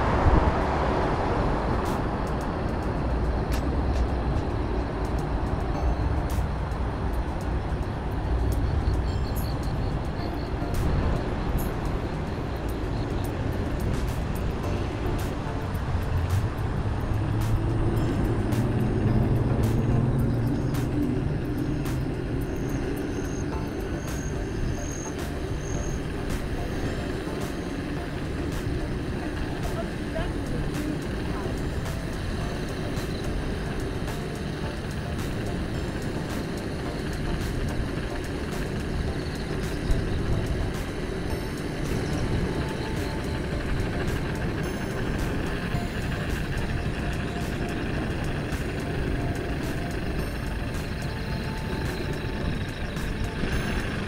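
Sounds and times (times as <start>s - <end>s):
wind rumble: 0.0s - 54.0s.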